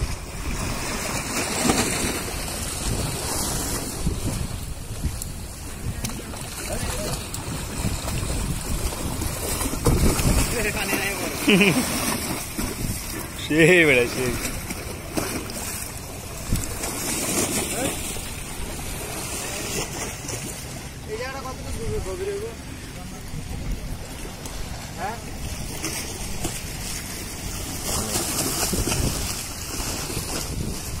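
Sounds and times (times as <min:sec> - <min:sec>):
wind buffeting microphone: 0:00.0 - 0:11.4, 0:12.3 - 0:31.0
water washing over concrete steps: 0:05.2 - 0:20.4, 0:24.9 - 0:31.0.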